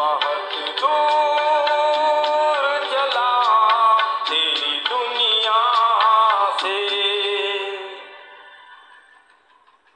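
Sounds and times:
old film song music: 0:00.0 - 0:09.0.

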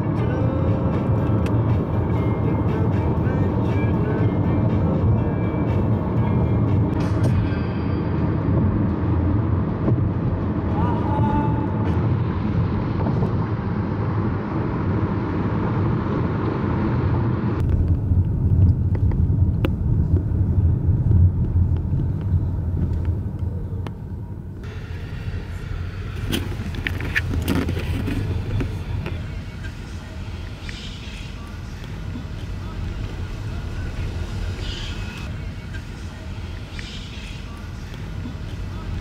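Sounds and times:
car road noise rumble: 0:00.0 - 0:39.0.

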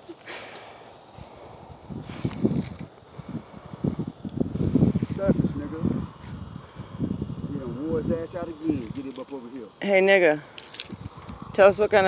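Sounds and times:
indistinct voices talking: 0:01.5 - 0:12.0.

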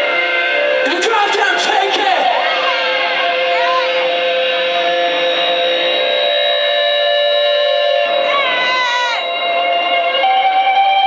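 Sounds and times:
band's sustained instrument drone: 0:00.0 - 0:11.0.

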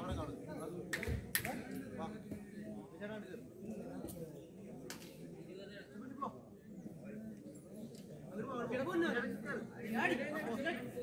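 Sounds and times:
chatter of several voices: 0:00.0 - 0:11.0.

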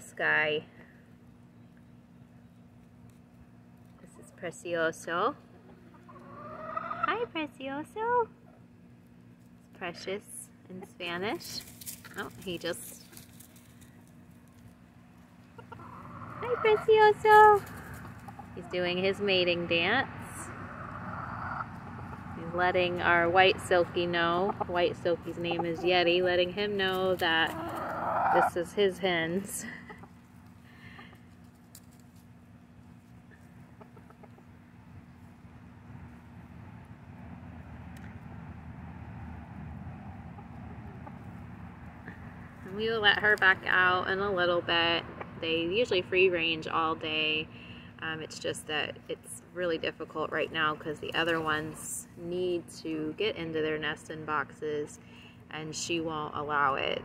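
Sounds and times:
low hum: 0:07.2 - 0:57.0.

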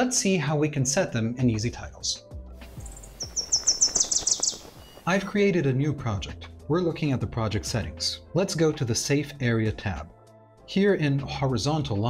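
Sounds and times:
cartoon bird tweets: 0:02.8 - 0:05.1.

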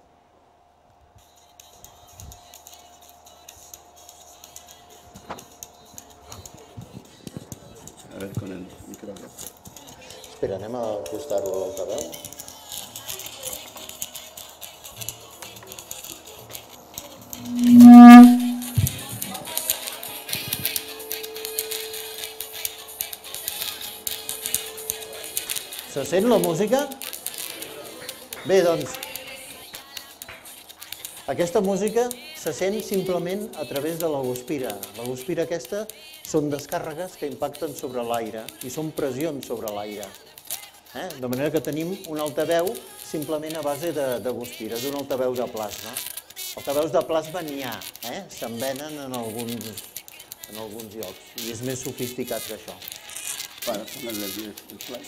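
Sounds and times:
faint music from arc speaker: 0:00.1 - 0:55.0
loud buzz: 0:17.3 - 0:19.5.

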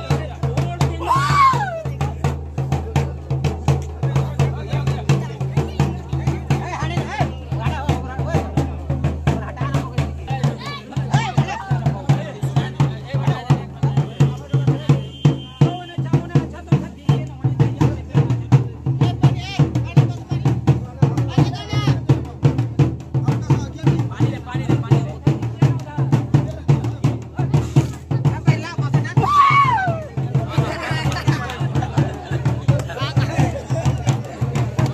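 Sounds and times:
fast steady drumming: 0:00.0 - 0:34.9
voices chatting: 0:01.8 - 0:34.9.

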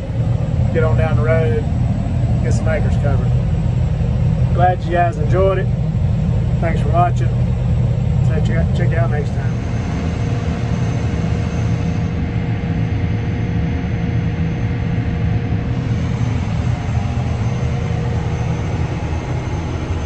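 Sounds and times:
crop sprayer engine drone: 0:00.0 - 0:20.0
faint steady whine: 0:00.0 - 0:20.0.

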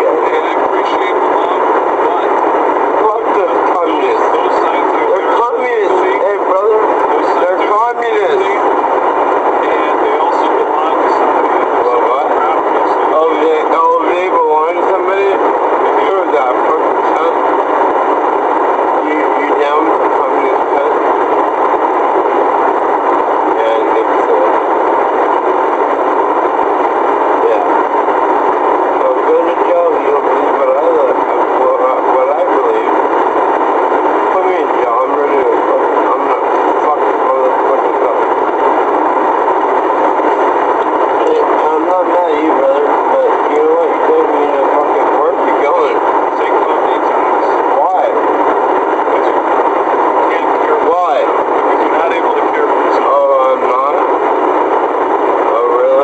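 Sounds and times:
loud steady hiss: 0:00.0 - 0:56.0
muffled voices: 0:00.0 - 0:56.0.

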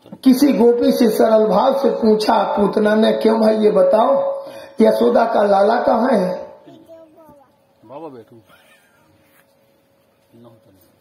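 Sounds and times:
faint steady hum: 0:00.0 - 0:11.0
man speaking over loudspeaker: 0:00.2 - 0:06.6.

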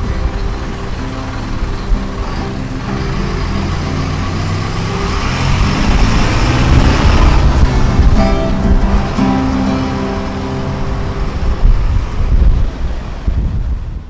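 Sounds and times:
large vehicle passing: 0:00.0 - 0:14.0.

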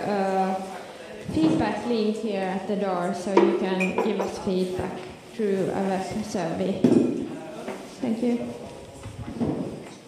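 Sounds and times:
people talking: 0:00.0 - 0:09.6
tableware clinking: 0:03.4 - 0:04.5.

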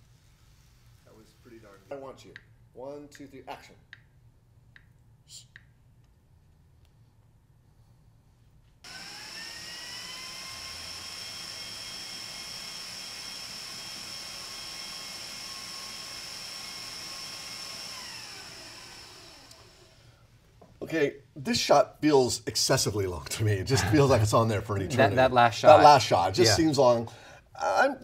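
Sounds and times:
kitchen appliance motor whine: 0:08.9 - 0:20.2.

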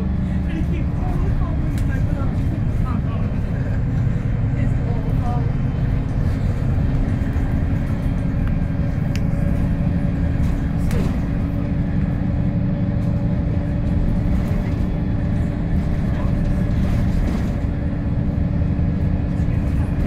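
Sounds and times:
bus engine and road drone: 0:00.0 - 0:20.0
constant whine: 0:00.0 - 0:20.0.

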